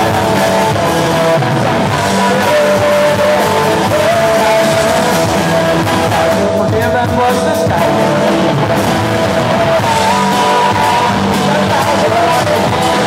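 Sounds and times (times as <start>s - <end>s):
punk rock band playing: 0.0s - 13.0s.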